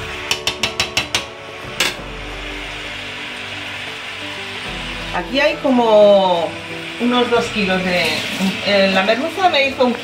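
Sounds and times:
utensil knocking on metal pot: 0.2s - 2.0s.

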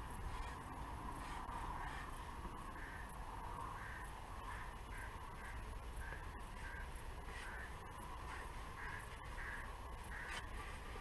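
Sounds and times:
faint outdoor background noise: 0.0s - 11.0s
bird calling: 1.2s - 11.0s.

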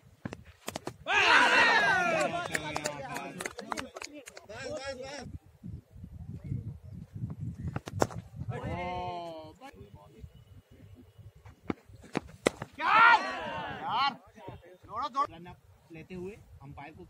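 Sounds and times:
players shouting: 1.0s - 3.3s, 12.7s - 14.2s.

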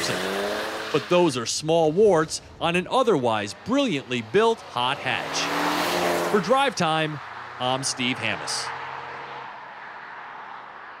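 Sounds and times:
tyre and road noise: 0.0s - 11.0s.

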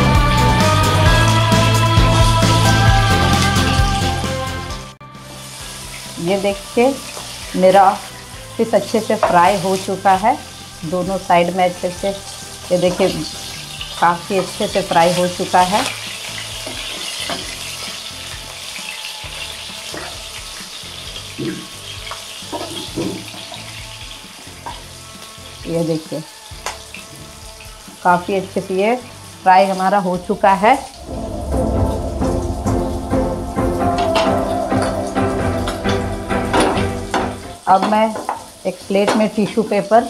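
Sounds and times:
background music: 0.0s - 40.0s
fish sizzling in hot oil: 5.1s - 31.0s, 35.8s - 40.0s.

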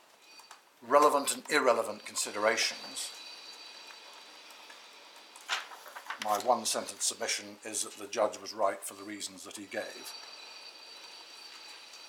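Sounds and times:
faint steady hiss: 0.0s - 12.0s
thin high-pitched tones: 1.1s - 5.0s.

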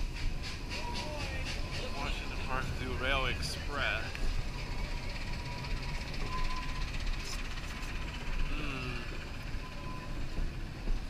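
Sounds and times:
train car rumbling on track: 0.0s - 11.0s.

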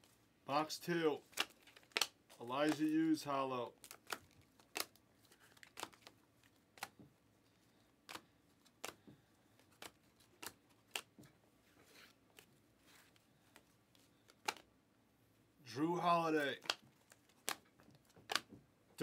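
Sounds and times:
cards being flicked: 1.3s - 3.1s, 3.8s - 7.0s, 8.0s - 11.3s, 13.1s - 14.7s, 16.4s - 18.6s.

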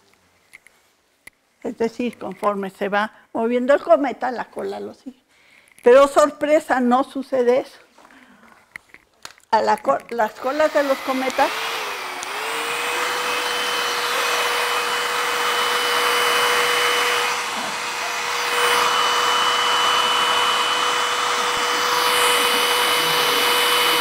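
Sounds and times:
hair dryer blowing hiss: 10.3s - 24.0s
hair dryer motor whine: 10.3s - 24.0s.

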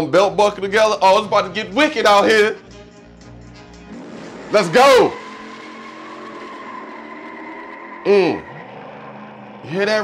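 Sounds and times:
film soundtrack through speakers: 0.0s - 10.0s
car tyres squealing: 3.9s - 10.0s.

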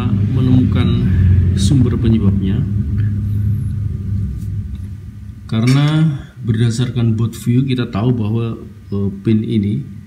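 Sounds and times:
low rumble with hum: 0.0s - 10.0s.

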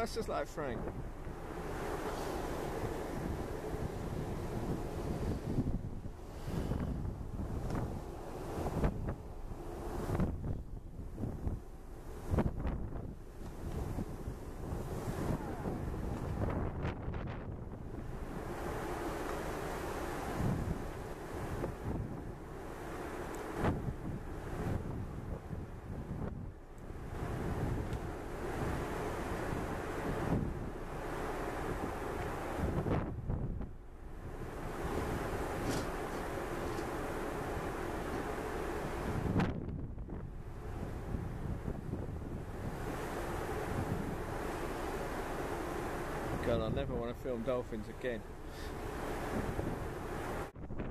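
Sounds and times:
sea wash: 0.0s - 50.9s
wind buffeting microphone: 0.0s - 50.9s.

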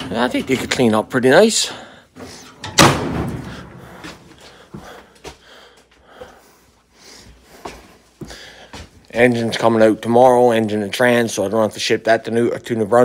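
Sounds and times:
truck door slamming: 2.7s - 3.6s.

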